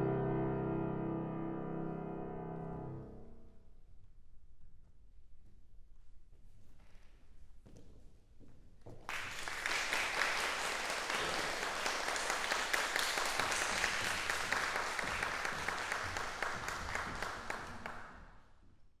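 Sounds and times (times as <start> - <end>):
audience applauding: 9.1 - 18.3.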